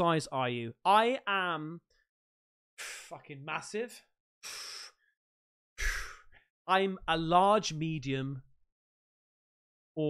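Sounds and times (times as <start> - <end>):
man speaking: 0.0 - 1.8, 3.1 - 4.1, 6.7 - 8.5
man breathing into microphone: 4.4 - 5.1, 5.8 - 6.4.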